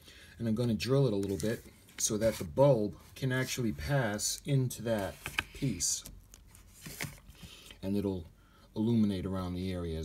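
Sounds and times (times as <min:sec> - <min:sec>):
plastic part clicks and rustles: 0:04.3 - 0:07.8.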